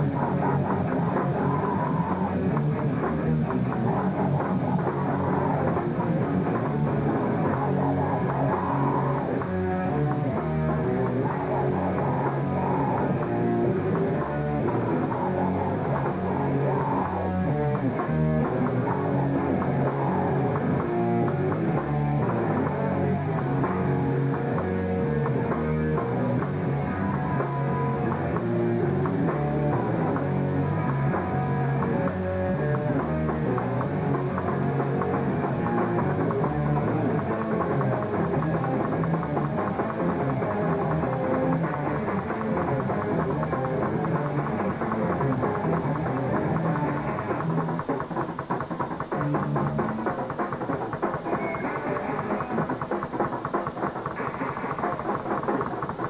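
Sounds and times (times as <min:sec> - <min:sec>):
bass guitar: 0:00.0 - 0:56.0
distorted electric guitars: 0:00.0 - 0:56.0
drum kit: 0:00.0 - 0:56.0.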